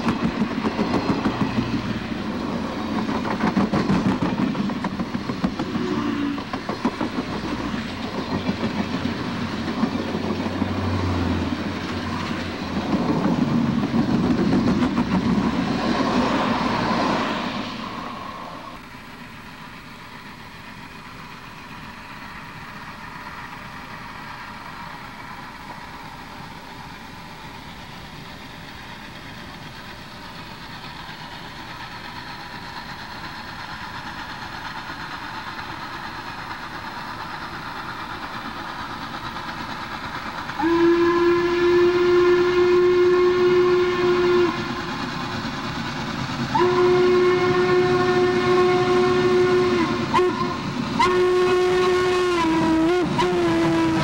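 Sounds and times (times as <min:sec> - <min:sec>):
train rumble: 0:00.0 - 0:54.0
steam locomotive whistle blasts: 0:05.6 - 0:06.6, 0:40.6 - 0:44.9, 0:46.5 - 0:54.0.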